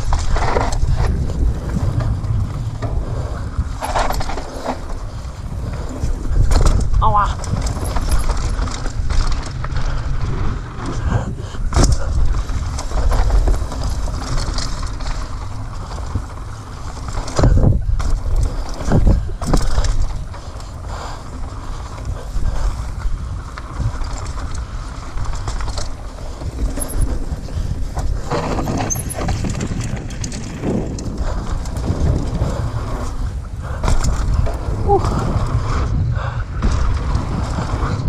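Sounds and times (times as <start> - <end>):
bike knocking over bumps: 0.0 - 38.0
bike rattling: 0.0 - 38.0
tyre and wind rush: 0.0 - 38.0.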